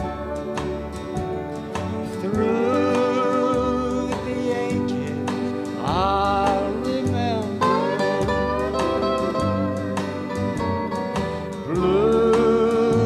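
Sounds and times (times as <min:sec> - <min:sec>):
sliding resonator guitar melody: 0:00.0 - 0:13.0
strummed rhythm guitar: 0:00.0 - 0:13.0.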